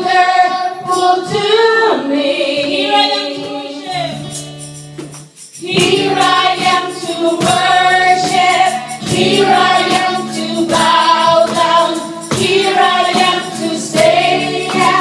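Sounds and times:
women singing together: 0:00.0 - 0:04.2, 0:05.6 - 0:15.0
acoustic guitar: 0:00.0 - 0:15.0.

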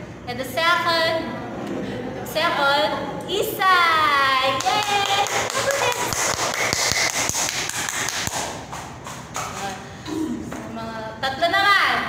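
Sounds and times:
quick hand claps and taps: 0:04.6 - 0:09.7.

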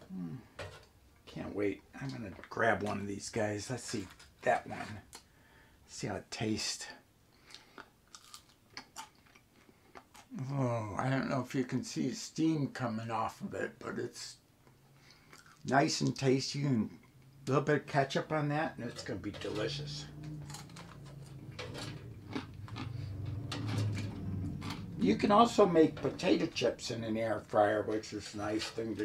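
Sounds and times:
low steady hum: 0:00.0 - 0:29.0
chewing crispy fry: 0:07.4 - 0:10.4, 0:15.0 - 0:15.7, 0:20.1 - 0:25.5.

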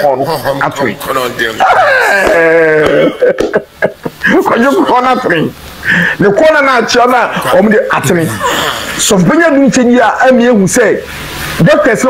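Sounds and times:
man's expressive voice: 0:04.2 - 0:12.0.

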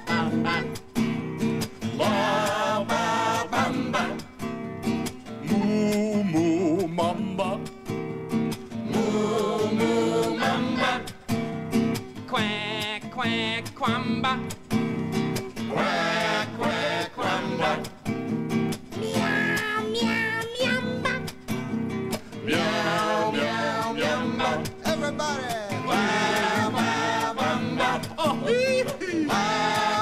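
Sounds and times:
puppet voices singing: 0:00.0 - 0:00.9, 0:01.9 - 0:04.4, 0:05.4 - 0:07.7, 0:08.8 - 0:11.3, 0:12.3 - 0:14.5, 0:15.7 - 0:18.0, 0:19.0 - 0:21.4, 0:22.4 - 0:30.0
strummed nylon-string guitar: 0:00.0 - 0:30.0
man singing: 0:05.4 - 0:07.7, 0:12.3 - 0:14.5, 0:27.8 - 0:30.0.

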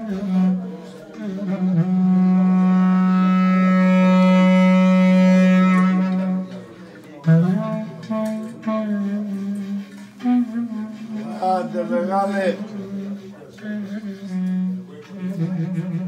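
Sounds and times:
clarinet playing low notes: 0:00.0 - 0:16.0.

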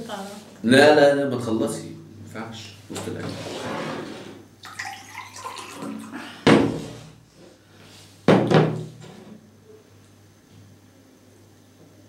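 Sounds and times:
water pouring into glass: 0:04.6 - 0:06.4.

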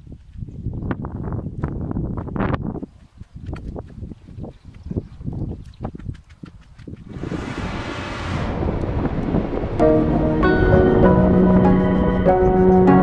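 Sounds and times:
wind buffeting microphone: 0:00.0 - 0:13.0
low irregular thumps: 0:07.0 - 0:11.6
rising whoosh: 0:07.1 - 0:12.2
background music with held notes: 0:09.7 - 0:13.0.

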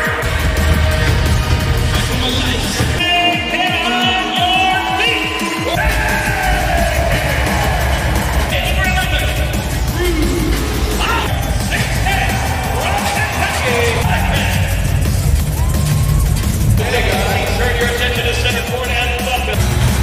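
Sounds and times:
arena music with heavy bass: 0:00.0 - 0:20.0.

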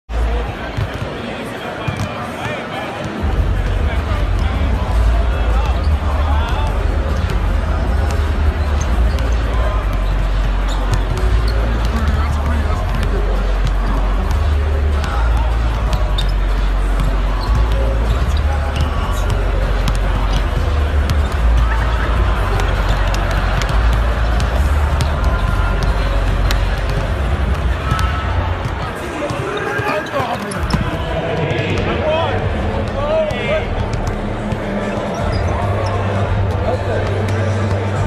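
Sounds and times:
crowd murmur: 0:00.1 - 0:38.0
voices: 0:00.1 - 0:38.0
basketballs bouncing on court: 0:00.4 - 0:01.2, 0:01.8 - 0:02.4, 0:03.0 - 0:38.0
deep bass arena music: 0:03.2 - 0:28.8, 0:30.9 - 0:38.0.

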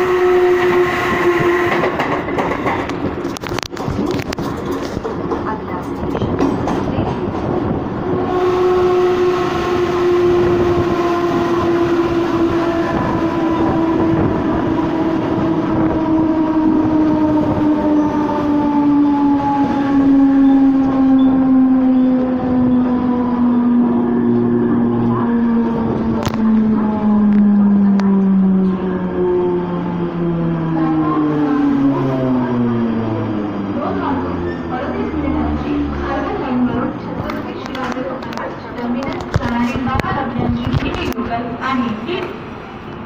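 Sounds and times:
train wheels rumbling on track: 0:00.0 - 0:43.0.

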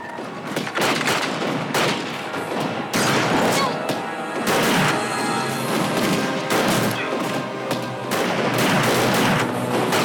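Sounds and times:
rifle shots with echo: 0:00.5 - 0:03.5, 0:04.4 - 0:05.0, 0:06.0 - 0:10.0.

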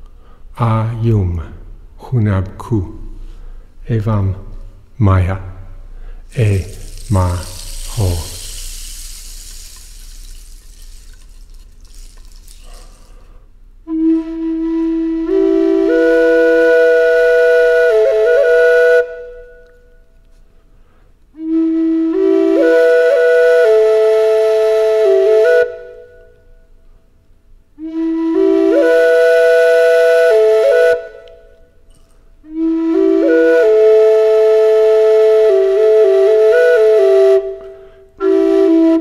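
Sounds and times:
steady rushing hiss: 0:06.2 - 0:13.7
flute music: 0:06.4 - 0:11.2, 0:13.8 - 0:20.1, 0:21.4 - 0:26.4, 0:27.8 - 0:31.8, 0:32.4 - 0:39.0.

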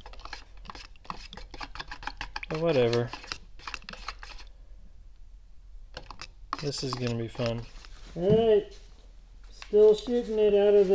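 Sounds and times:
stir stick scraping plastic cup: 0:00.0 - 0:04.5, 0:05.9 - 0:08.0.

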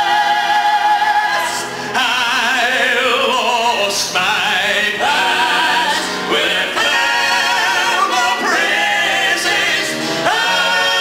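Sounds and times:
male quartet singing in harmony: 0:00.0 - 0:11.0.

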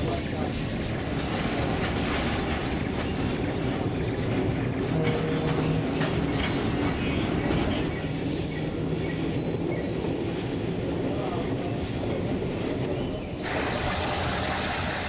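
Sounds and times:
train carriage rumbling and rattling: 0:00.0 - 0:15.0
wheels clacking over rail joints: 0:00.0 - 0:15.0.

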